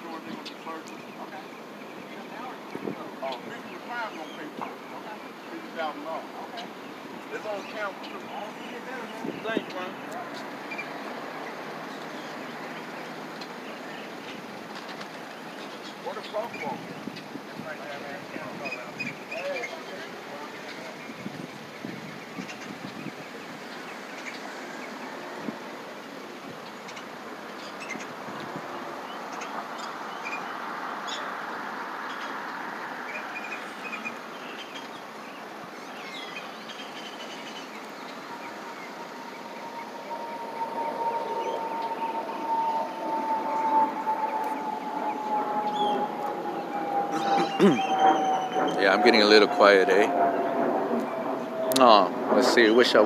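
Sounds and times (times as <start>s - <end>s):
street traffic noise: 0.0s - 53.0s
vehicle passing: 27.2s - 53.0s
whine falling in pitch: 38.4s - 53.0s.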